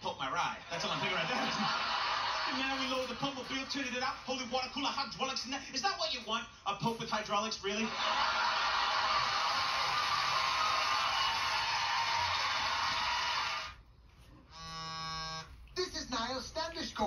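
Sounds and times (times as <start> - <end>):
music on television: 0.7 - 4.8, 8.0 - 14.2
studio audience applauding and cheering: 0.8 - 4.6, 7.9 - 13.8
steady buzzing tone: 14.5 - 15.6.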